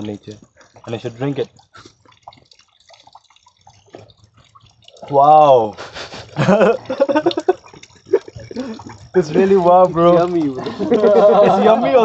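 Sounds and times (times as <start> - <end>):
man laughing: 6.1 - 12.0.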